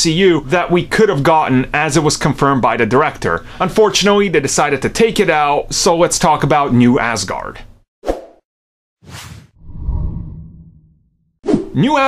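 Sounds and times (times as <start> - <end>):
quick whoosh: 9.0 - 11.7
low deep swell: 9.6 - 11.1.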